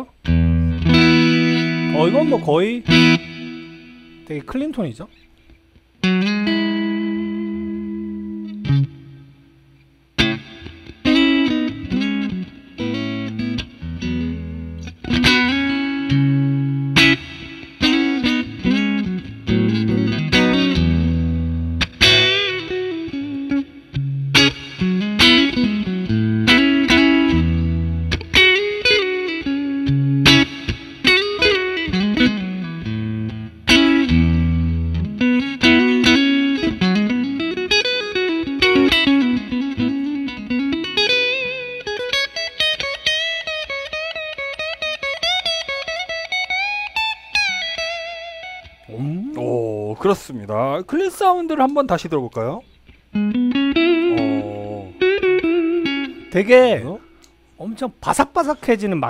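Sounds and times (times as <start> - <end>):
clean electric guitar: 0.0 - 50.0, 52.6 - 57.6.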